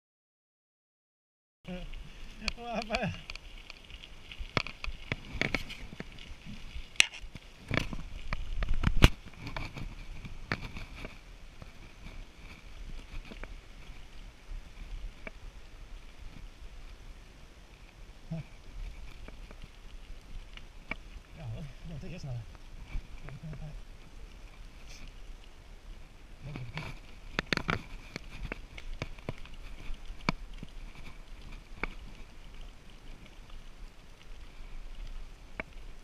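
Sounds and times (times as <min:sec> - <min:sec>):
bicycle tyres rumbling: 0:01.7 - 0:36.0
bike rattling over bumps: 0:18.6 - 0:36.0.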